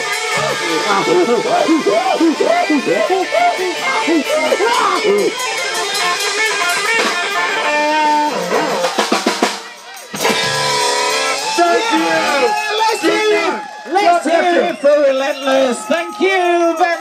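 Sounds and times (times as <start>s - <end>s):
live band with singing: 0.0s - 12.7s.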